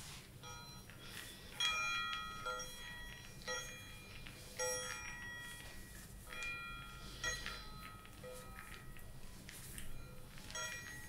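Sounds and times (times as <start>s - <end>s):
chimes ringing: 9.9s - 11.0s.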